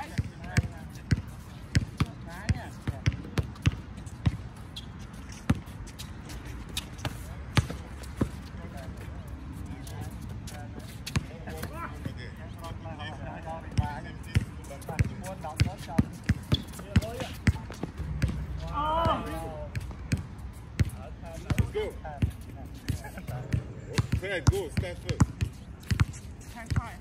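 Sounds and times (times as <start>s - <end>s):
basketball bouncing on hard court: 0.1s - 4.4s, 13.8s - 22.4s, 23.5s - 27.0s
players calling out: 16.6s - 20.0s
loud shout: 18.6s - 19.6s.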